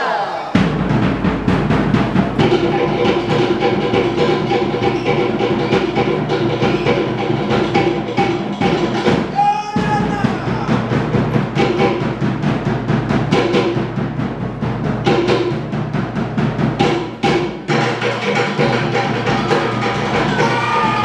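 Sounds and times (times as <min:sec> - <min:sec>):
deeper drum: 0:00.6 - 0:21.0.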